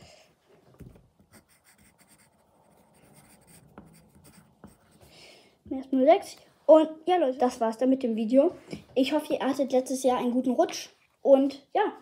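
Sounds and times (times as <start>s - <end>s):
pencil scratching on paper: 1.2s - 5.1s.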